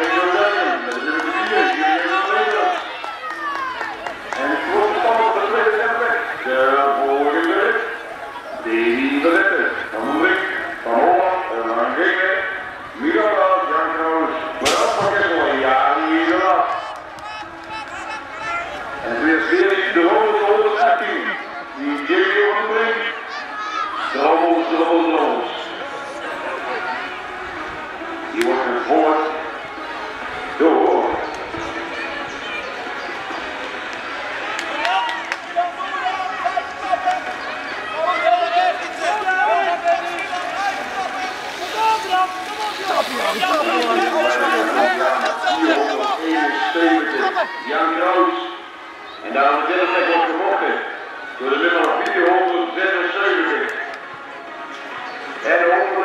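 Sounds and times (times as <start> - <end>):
crowd noise: 0.0 - 56.0
voices calling out and talking: 0.0 - 56.0.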